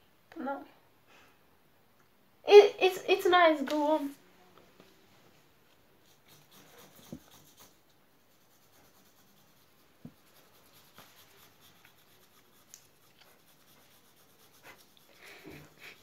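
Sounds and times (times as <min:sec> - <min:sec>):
pencil scratching on paper: 0:06.0 - 0:16.0.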